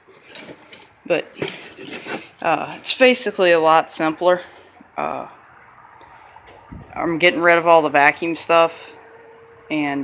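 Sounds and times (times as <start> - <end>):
metal engine parts clinking: 0.0 - 2.9.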